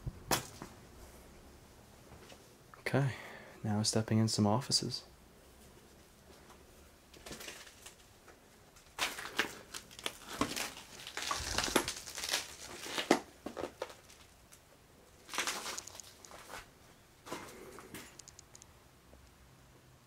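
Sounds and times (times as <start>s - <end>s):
footsteps crunching on broken glass: 9.0s - 14.3s, 15.2s - 16.7s.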